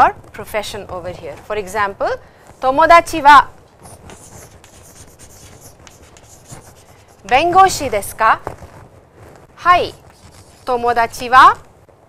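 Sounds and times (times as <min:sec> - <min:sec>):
chalk strokes on chalkboard: 0:03.8 - 0:08.0, 0:09.6 - 0:11.0.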